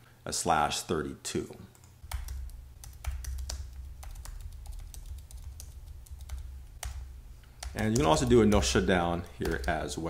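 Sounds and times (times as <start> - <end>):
low steady hum: 0.0 - 10.0
computer keyboard typing: 1.7 - 10.0.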